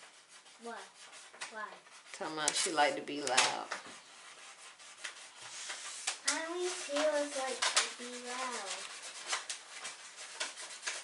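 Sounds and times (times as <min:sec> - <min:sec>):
hands rubbing yarn: 0:00.0 - 0:11.0.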